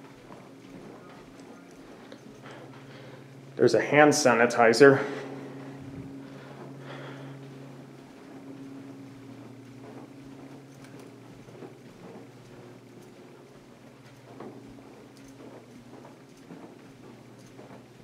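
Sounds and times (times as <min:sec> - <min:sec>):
low steady hum: 0:00.0 - 0:18.0.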